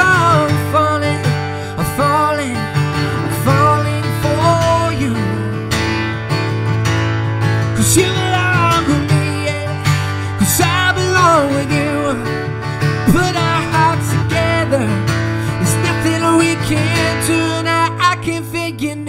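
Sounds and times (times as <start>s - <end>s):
man singing: 0.0s - 5.8s, 7.8s - 19.0s
acoustic guitar strumming: 0.0s - 19.0s.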